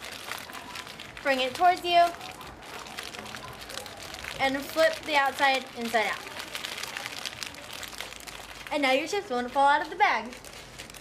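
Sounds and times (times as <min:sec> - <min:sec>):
chip bag crinkling: 0:00.0 - 0:11.0.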